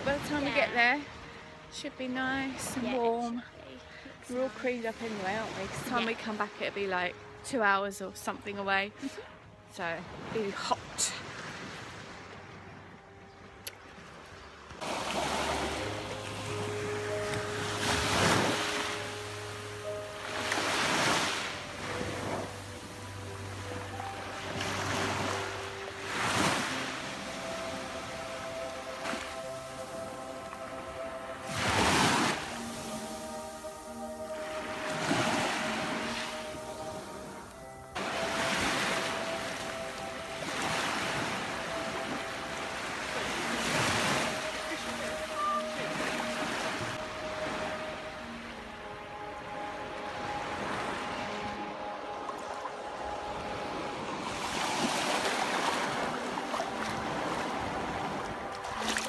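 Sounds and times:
soft music of sustained notes: 0:00.0 - 0:59.0
small waves washing onto sand: 0:14.8 - 0:48.5, 0:50.5 - 0:59.0.

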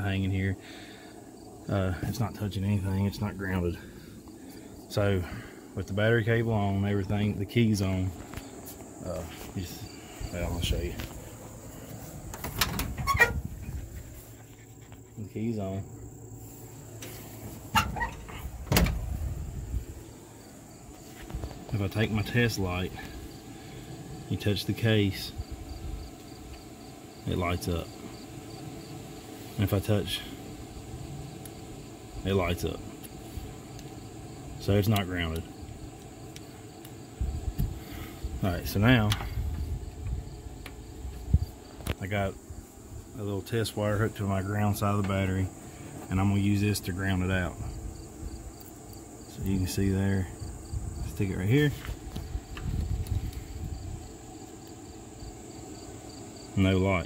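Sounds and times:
crickets chirping: 0:00.0 - 0:57.0
low irregular rumble: 0:00.0 - 0:57.0
car door squeak: 0:12.6 - 0:13.5, 0:17.7 - 0:19.0.

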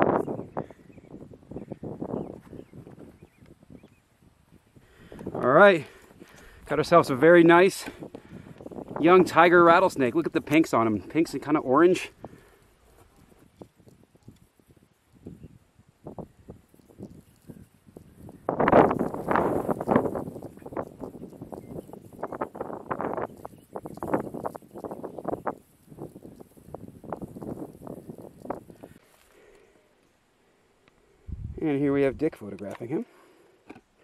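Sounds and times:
faint steady high hiss: 0:00.0 - 0:34.0.

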